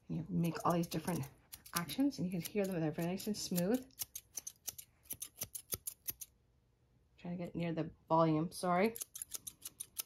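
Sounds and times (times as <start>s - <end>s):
scissors snipping: 0.3s - 6.3s, 8.9s - 10.0s.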